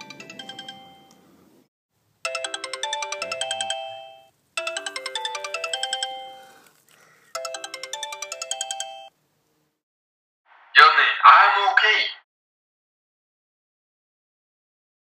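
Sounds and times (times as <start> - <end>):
smartphone ringtone chime melody: 0.0 - 1.2, 2.2 - 6.6, 7.3 - 9.1.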